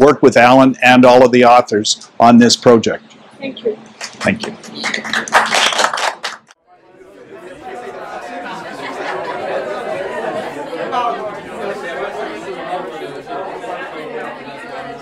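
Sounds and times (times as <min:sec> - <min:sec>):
overlapping conversation: 0:03.1 - 0:15.0.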